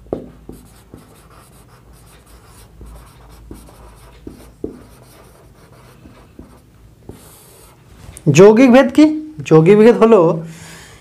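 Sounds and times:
marker tip tapping board: 0.0s - 1.1s
marker pen writing on whiteboard: 0.0s - 7.8s.

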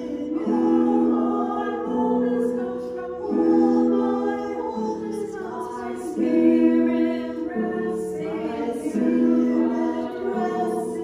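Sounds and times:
a cappella choir singing: 0.0s - 11.0s.

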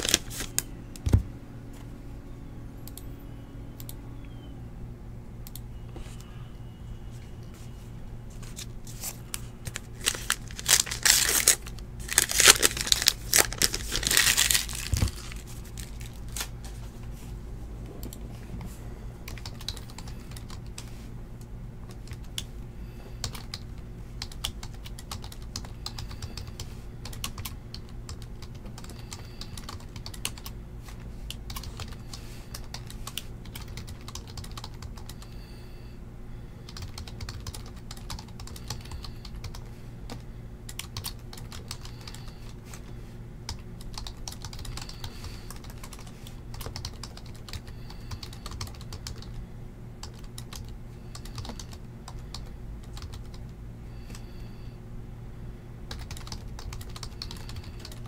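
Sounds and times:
steady low hum: 0.0s - 58.0s
computer keyboard typing: 19.2s - 20.9s, 21.9s - 22.5s, 23.1s - 30.6s, 31.3s - 35.4s, 36.6s - 42.6s, 43.5s - 49.4s, 50.0s - 53.5s, 55.9s - 58.0s.

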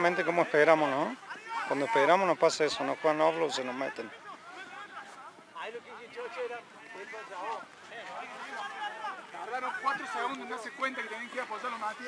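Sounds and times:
faint overlapping voices calling: 0.0s - 12.0s.

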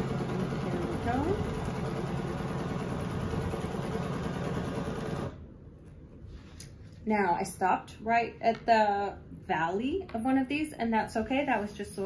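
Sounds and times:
sewing machine running: 0.0s - 5.4s.

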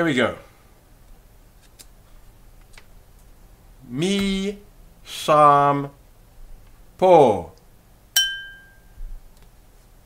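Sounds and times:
small bell ringing: 8.2s - 9.0s.

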